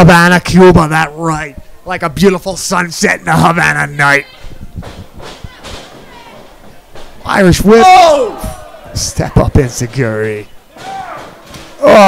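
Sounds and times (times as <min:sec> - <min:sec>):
faint voices in large hall: 0:03.8 - 0:12.0
wrestlers moving on canvas: 0:04.2 - 0:07.6.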